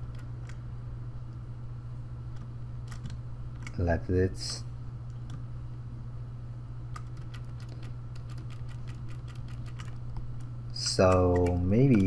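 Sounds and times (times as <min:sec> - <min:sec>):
computer mouse clicks: 0:02.3 - 0:03.8, 0:10.9 - 0:12.0
keyboard clicks: 0:02.4 - 0:03.8, 0:06.9 - 0:12.0.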